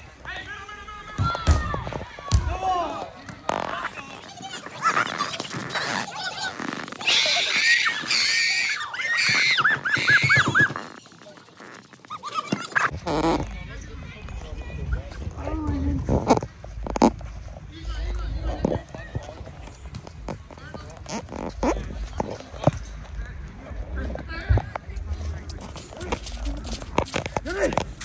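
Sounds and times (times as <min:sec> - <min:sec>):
soccer ball kicks: 0:01.1 - 0:02.6.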